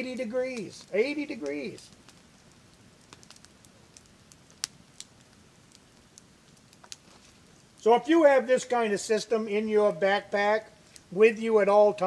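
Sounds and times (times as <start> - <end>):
campfire crackling: 0.0 - 12.0
fire pops and snaps: 0.0 - 12.0.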